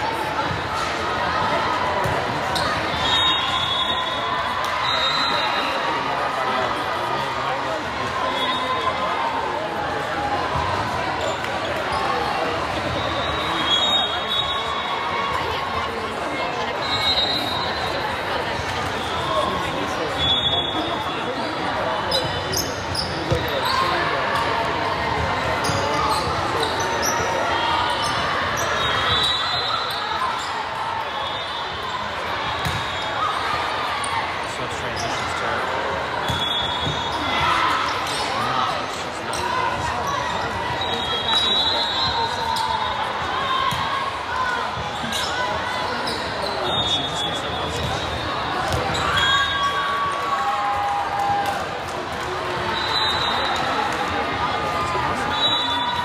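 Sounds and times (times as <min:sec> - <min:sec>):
chatter of voices: 0:00.0 - 0:56.0
sneakers squeaking on court: 0:32.6 - 0:33.0.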